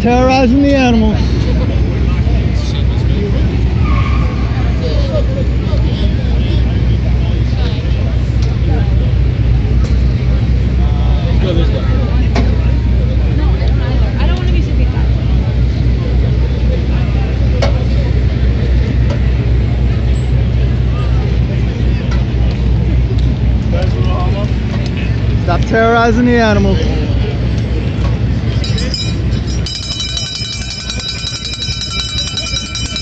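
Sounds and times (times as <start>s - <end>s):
low rumble of traffic: 0.0s - 33.0s
passers-by talking: 0.0s - 33.0s.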